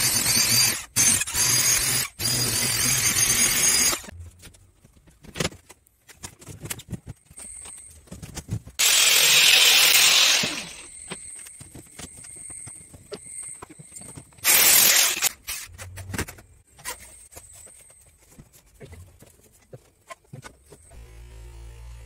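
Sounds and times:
disc cutter cutting plastic: 8.8s - 10.9s.

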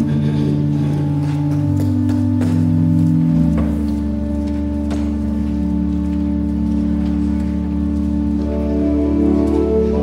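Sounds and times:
pipe organ chords: 0.0s - 10.0s.

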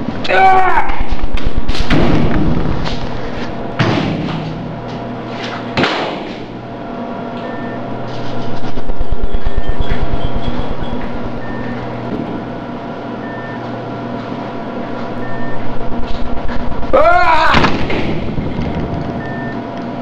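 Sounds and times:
loud droning hum: 0.0s - 20.0s
fast-throbbing low pulse: 8.6s - 12.6s.

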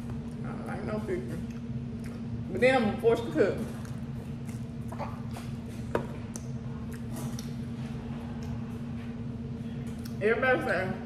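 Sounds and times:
steady low hum: 0.0s - 11.0s
person chewing crunchy food: 3.7s - 9.0s.

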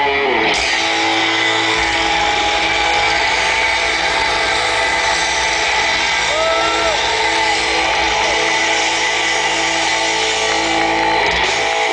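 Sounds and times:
distorted electric guitar chord: 0.0s - 11.9s.

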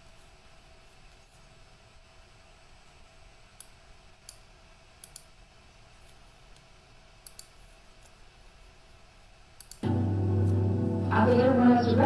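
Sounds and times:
low background hiss: 0.0s - 12.0s
computer mouse clicks: 3.6s - 5.4s, 6.0s - 8.2s, 9.6s - 9.8s
loud low steady soundtrack: 9.8s - 12.0s.

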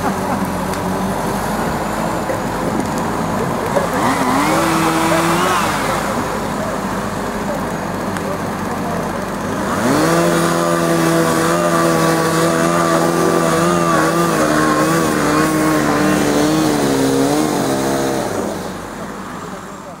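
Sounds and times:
diesel engine revving: 0.0s - 20.0s.

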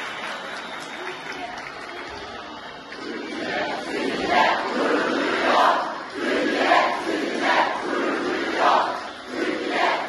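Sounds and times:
crowd chanting and shouting: 0.0s - 10.0s.

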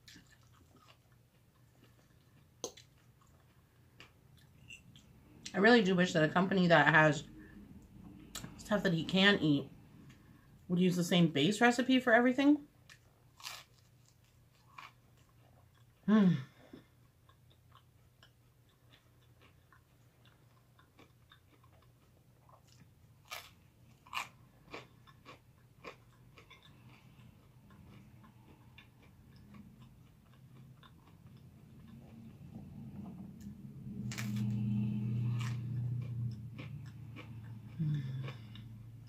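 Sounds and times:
close-up chewing of food: 0.0s - 5.1s, 12.8s - 16.1s, 16.7s - 39.0s
bread crunching: 12.9s - 15.8s, 17.7s - 26.7s
low hum: 22.9s - 39.0s.

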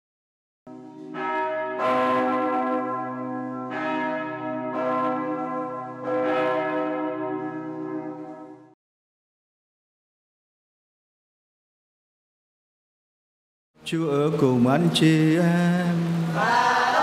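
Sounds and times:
church bells ringing: 0.7s - 8.8s.

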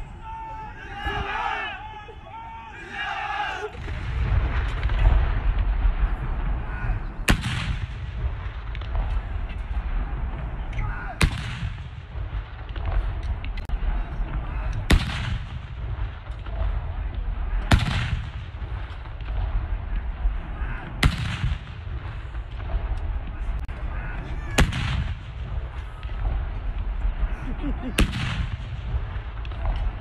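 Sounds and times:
artillery gun report: 0.0s - 30.0s
rolling echo: 0.0s - 30.0s
low rumble: 3.8s - 30.0s.

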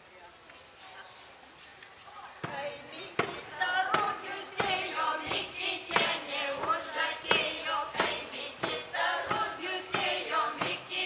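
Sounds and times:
voices: 0.0s - 11.0s
deep hand drum beat: 3.2s - 11.0s.

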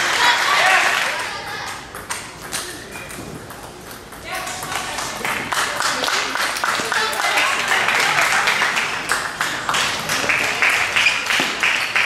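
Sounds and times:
background chatter in a hall: 0.0s - 12.0s.

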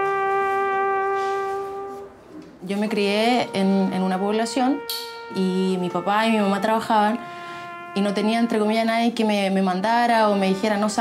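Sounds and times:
long held instrumental note: 0.0s - 11.0s.

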